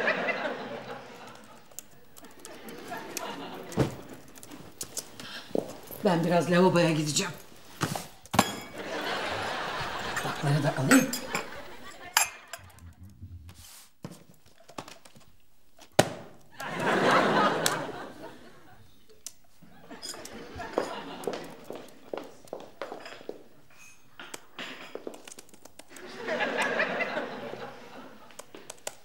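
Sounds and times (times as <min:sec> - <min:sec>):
porcelain teacups clinking: 0:08.3 - 0:12.8, 0:19.7 - 0:25.2.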